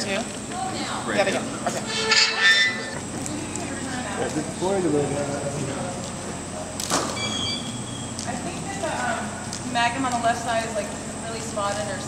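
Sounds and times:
noisy room background: 0:00.0 - 0:12.0.

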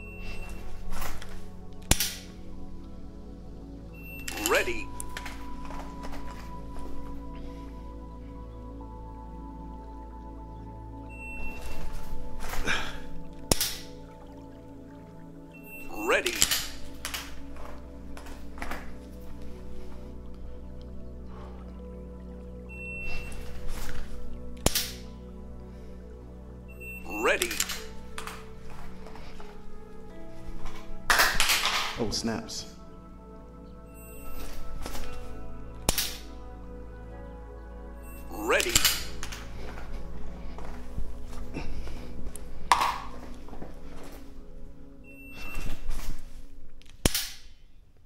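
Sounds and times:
background music: 0:00.0 - 0:48.0
shot timer beep: 0:04.0 - 0:04.5
clothing rustle: 0:39.1 - 0:47.1.

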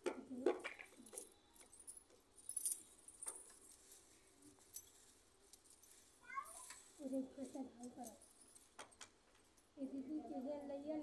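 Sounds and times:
small metal things jingling: 0:00.1 - 0:11.0.

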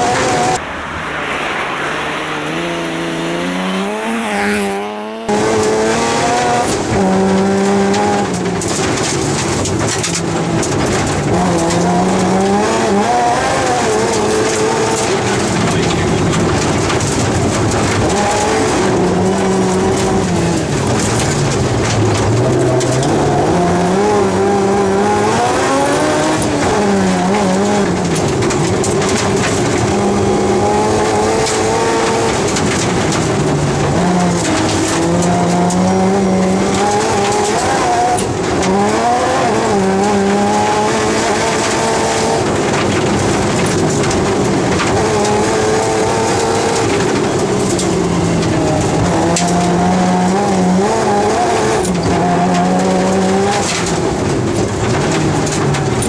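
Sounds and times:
car engine revving: 0:00.0 - 0:56.0
tyre and gravel noise: 0:00.0 - 0:56.0.

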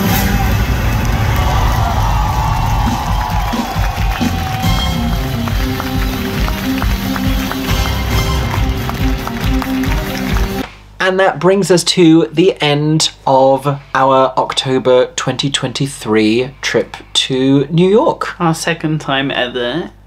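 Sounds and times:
audience cheering and clapping: 0:00.0 - 0:10.6
band playing upbeat music: 0:02.8 - 0:10.6.

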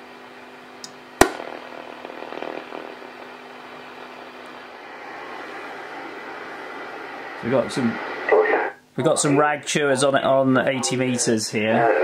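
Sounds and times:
radio static hiss with whistles: 0:01.4 - 0:09.4, 0:10.7 - 0:12.0.

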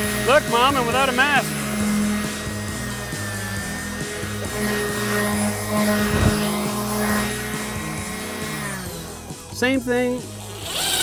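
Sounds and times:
background music with bass: 0:00.0 - 0:11.0
orbital sander on wood: 0:00.0 - 0:11.0.

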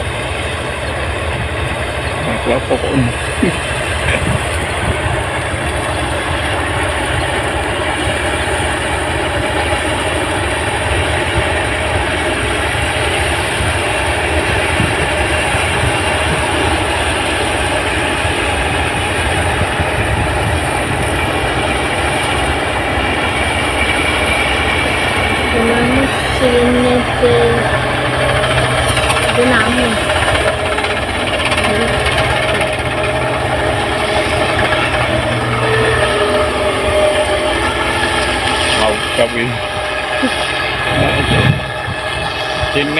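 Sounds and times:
combine harvester running: 0:00.0 - 0:42.9.

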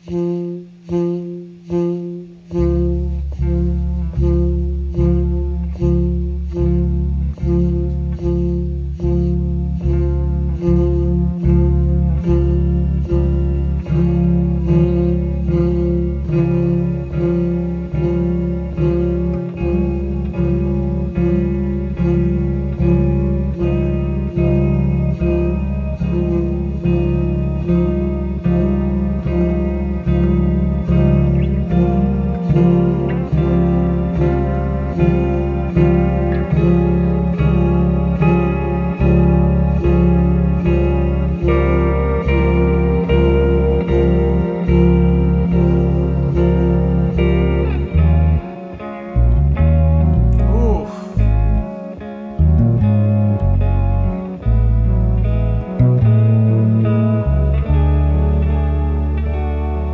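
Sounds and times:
deep bass line: 0:00.0 - 0:59.9
effected saxophone: 0:00.0 - 0:59.9
electric guitar: 0:00.0 - 0:59.9.

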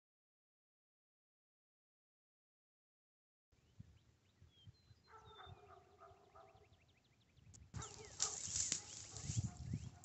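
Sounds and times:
small birds chirping: 0:03.6 - 0:10.0.

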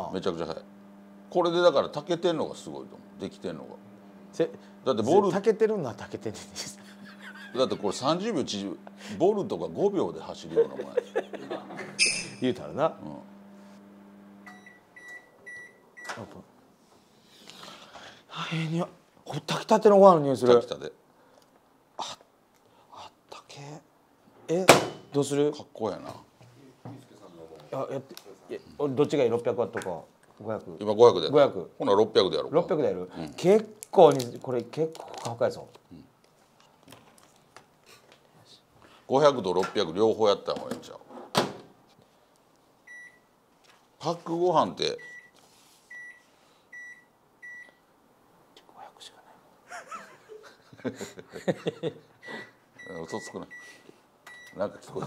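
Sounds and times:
microwave oven humming: 0:00.0 - 0:16.3
microwave high beeps: 0:11.9 - 0:12.6, 0:14.4 - 0:16.2, 0:42.9 - 0:43.3, 0:45.0 - 0:47.8, 0:52.2 - 0:54.6.

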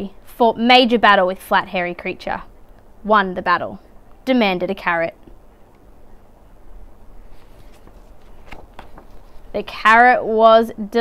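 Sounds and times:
low room hum: 0:00.0 - 0:11.0
book page turning: 0:07.2 - 0:09.6.

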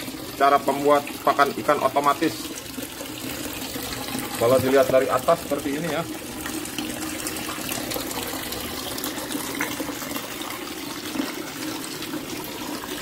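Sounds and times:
water pouring into pond: 0:00.0 - 0:13.0.

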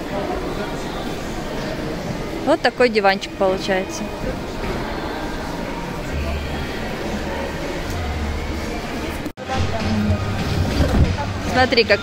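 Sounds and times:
store ambience: 0:00.0 - 0:12.0
background music with low bass: 0:04.0 - 0:12.0.

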